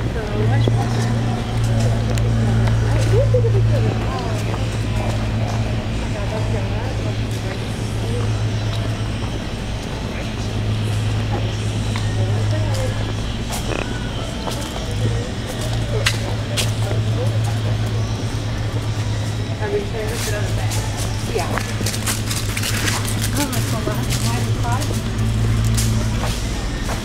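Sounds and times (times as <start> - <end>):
faint voices: 0.0 - 27.0.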